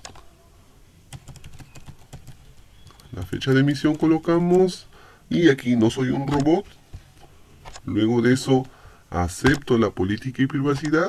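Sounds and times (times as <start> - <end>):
computer keyboard typing: 0.0 - 0.3, 1.1 - 4.8, 6.1 - 8.8, 9.4 - 11.0.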